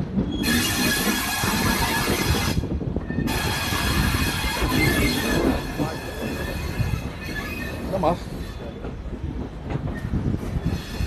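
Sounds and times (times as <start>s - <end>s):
train wheels rumbling on rails: 0.0s - 11.0s.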